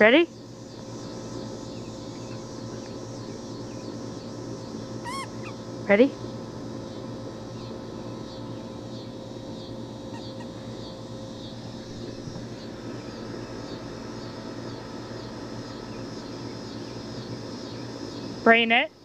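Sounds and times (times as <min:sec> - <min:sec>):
steady low hum: 0:00.0 - 0:19.0
faint high chirps: 0:05.0 - 0:05.6.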